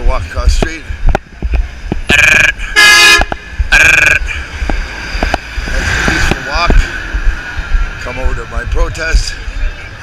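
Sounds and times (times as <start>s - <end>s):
vehicle horns honking: 2.1s - 4.5s.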